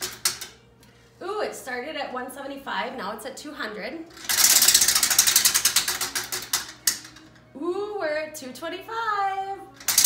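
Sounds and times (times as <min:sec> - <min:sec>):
prize wheel pointer clicking: 0:04.2 - 0:07.3, 0:09.8 - 0:10.0.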